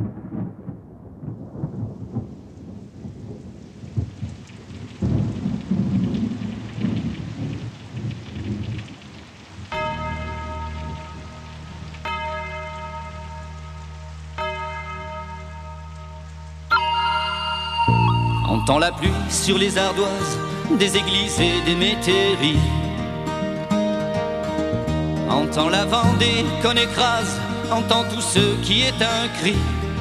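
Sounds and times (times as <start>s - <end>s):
rolling thunder: 0.0s - 12.6s
rain: 0.0s - 30.0s
low steady drone: 9.7s - 21.0s
tolling bell-like tone: 9.8s - 20.2s.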